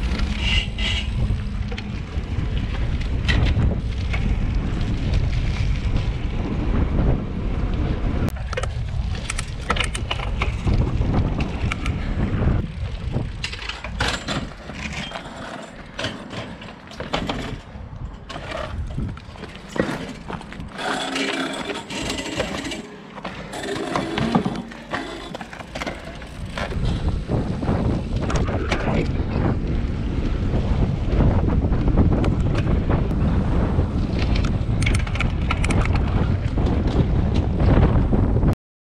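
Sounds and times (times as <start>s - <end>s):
wind buffeting microphone: 0.0s - 15.2s, 17.0s - 22.8s, 23.5s - 38.6s
tyres rumbling on asphalt: 0.0s - 38.5s
knocks and clatter: 13.2s - 27.1s.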